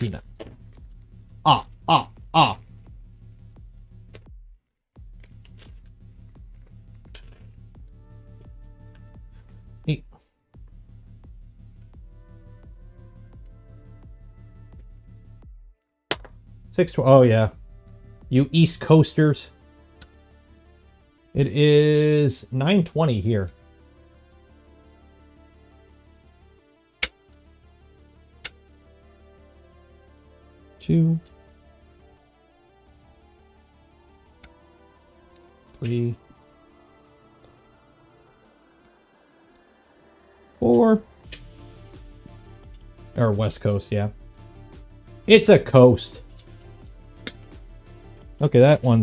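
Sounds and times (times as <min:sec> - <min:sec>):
quiet background music: 0:00.0 - 0:49.0
small metal parts clinking: 0:46.2 - 0:46.9.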